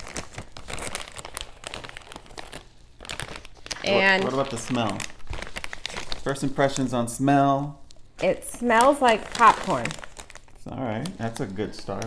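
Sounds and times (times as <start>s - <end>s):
plastic snack bag crinkling: 0.0s - 12.0s.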